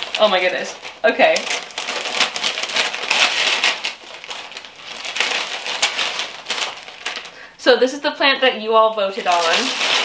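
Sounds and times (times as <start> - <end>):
paper wrapping crinkling and tearing: 0.0 - 7.5, 9.1 - 10.0.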